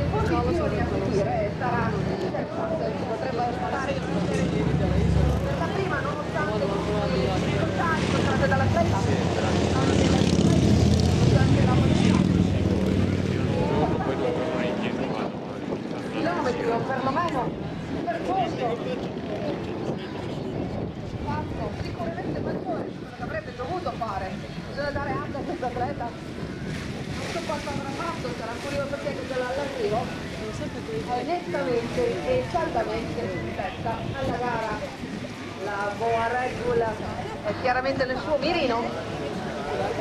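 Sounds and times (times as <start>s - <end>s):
people talking indistinctly: 0.0s - 40.0s.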